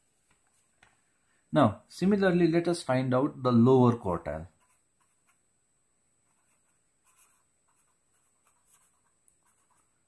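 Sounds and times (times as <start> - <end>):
pen scratching on paper: 4.5 - 5.5, 6.2 - 10.0.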